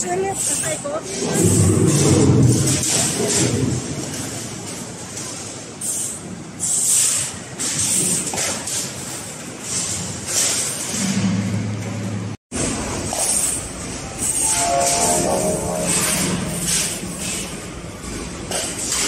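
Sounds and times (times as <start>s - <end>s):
balls rolling on metal tracks: 0.0s - 19.0s
falling run of pitched notes: 14.4s - 17.8s.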